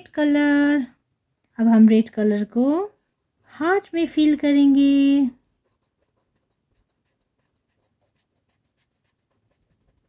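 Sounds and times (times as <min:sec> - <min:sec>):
marker strokes on paper: 0:03.0 - 0:10.0.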